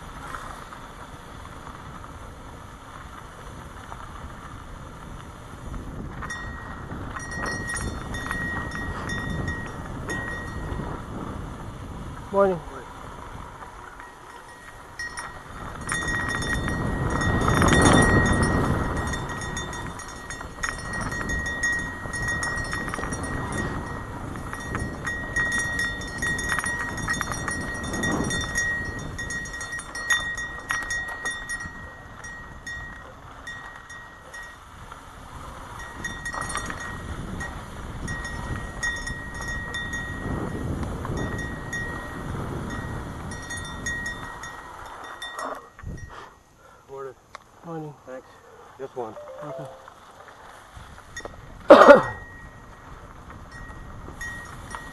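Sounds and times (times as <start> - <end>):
bike rattles and clicks: 0.0 - 46.1, 50.0 - 54.9
wind buffeting microphone: 0.0 - 46.2, 49.9 - 54.9
thin high whine: 49.1 - 50.0.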